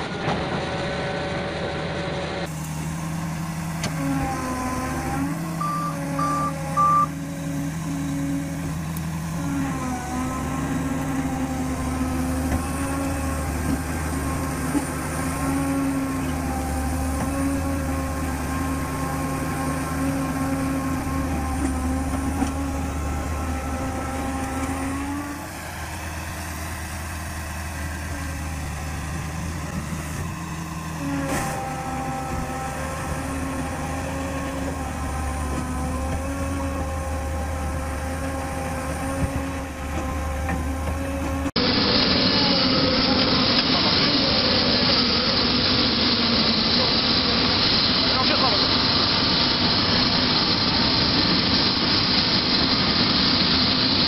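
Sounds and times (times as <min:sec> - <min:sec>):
diesel bulldozer engine under load: 0:00.0 - 0:54.0
reversing alarm beeps: 0:05.6 - 0:07.2.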